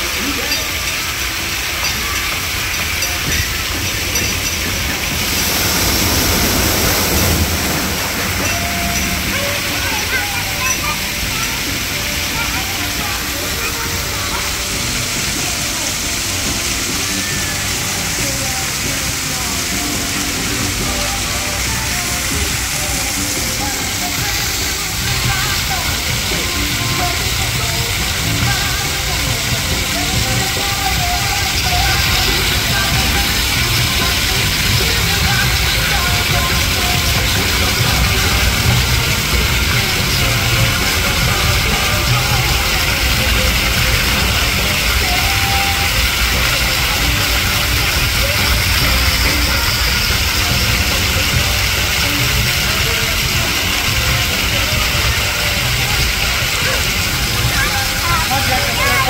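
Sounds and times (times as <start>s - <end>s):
background music: 0.0s - 59.0s
background voices: 0.0s - 59.0s
fountain water splashing: 0.0s - 59.0s.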